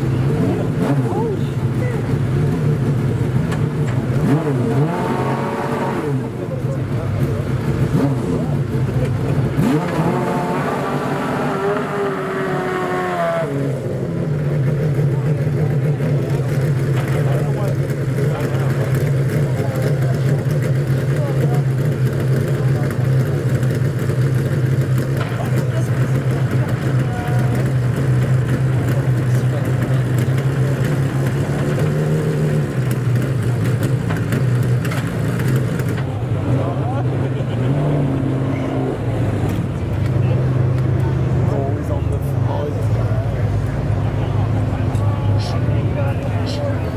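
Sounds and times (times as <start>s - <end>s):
car engine revving and idling: 0.0s - 46.9s.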